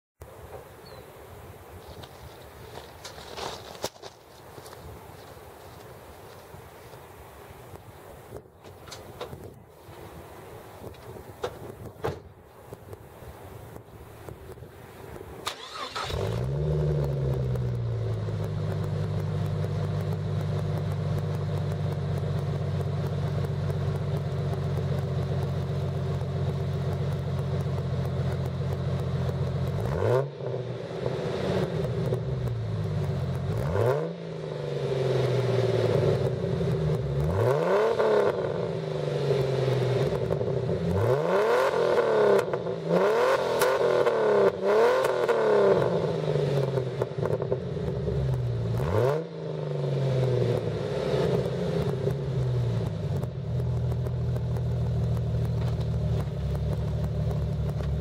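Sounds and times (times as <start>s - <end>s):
car engine idling: 12.3s - 42.9s, 43.8s - 58.0s
engine revving in blips: 15.4s - 58.0s.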